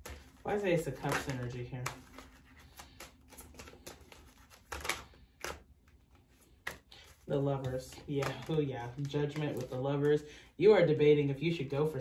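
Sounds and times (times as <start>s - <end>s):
cards being shuffled: 0.0s - 10.3s.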